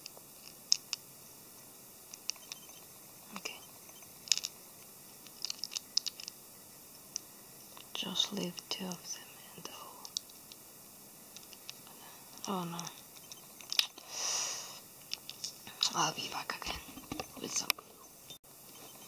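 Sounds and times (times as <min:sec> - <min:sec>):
plastic parts clicking: 0:04.2 - 0:04.6, 0:05.2 - 0:06.4.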